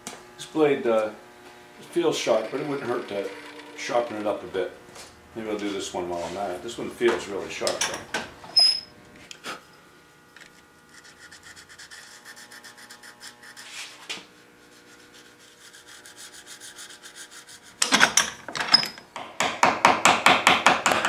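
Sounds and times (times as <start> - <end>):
gouge honing rasping scrape: 1.8 - 4.8, 10.9 - 14.0, 14.7 - 17.8.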